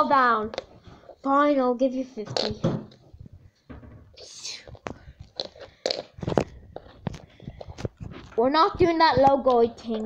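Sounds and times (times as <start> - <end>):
child whispering: 4.2 - 4.9.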